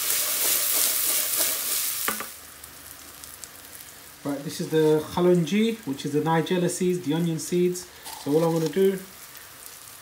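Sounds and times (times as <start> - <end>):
wooden spoon stirring: 0.0 - 1.8
onion sizzling in hot oil: 0.0 - 10.0.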